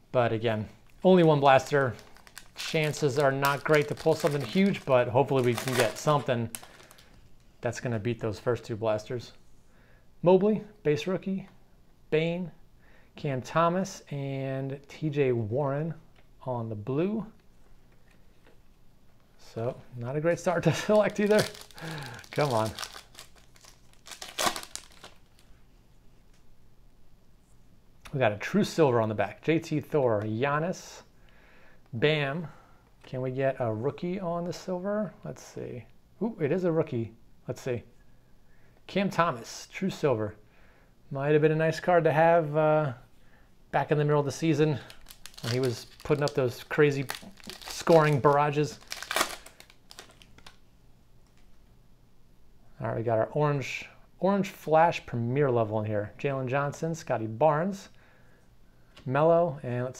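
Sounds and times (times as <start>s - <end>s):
faint handling of cards: 0.6s - 7.7s, 17.3s - 26.6s, 44.2s - 51.7s
foil wrapper tearing and crinkling: 1.6s - 7.1s, 20.7s - 25.4s, 44.9s - 50.6s.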